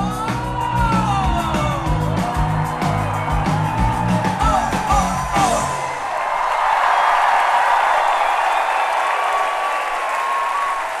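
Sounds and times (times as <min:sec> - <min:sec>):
crowd applauding and cheering: 0:00.0 - 0:11.0.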